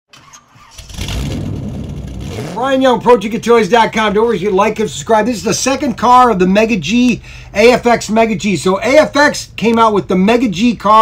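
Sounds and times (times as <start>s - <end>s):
car engine starting and running: 0.1s - 6.5s.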